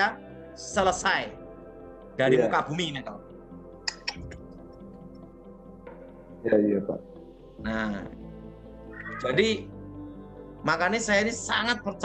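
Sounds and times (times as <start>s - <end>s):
quiet background music: 0.0s - 12.0s
soft ticking beat: 3.9s - 8.4s.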